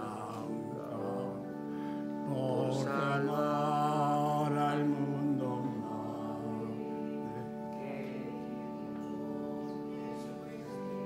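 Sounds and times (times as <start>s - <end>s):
held accompaniment chords: 0.0s - 11.0s
person singing a hymn: 0.0s - 11.0s.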